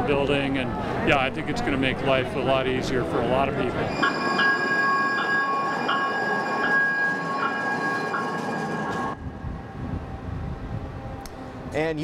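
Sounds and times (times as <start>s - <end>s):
train rolling rumble: 3.8s - 12.0s
train wheels squealing: 3.9s - 9.2s.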